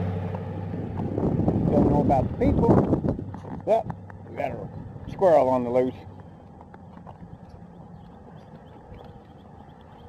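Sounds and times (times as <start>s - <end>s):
wind on microphone: 0.6s - 4.0s.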